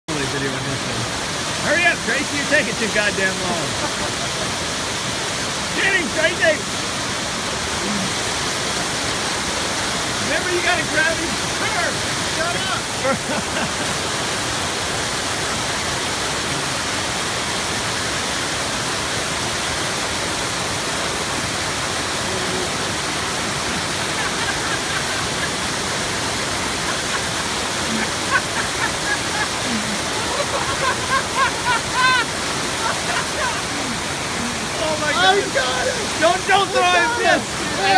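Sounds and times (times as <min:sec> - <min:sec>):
waterfall rushing: 0:00.1 - 0:37.9.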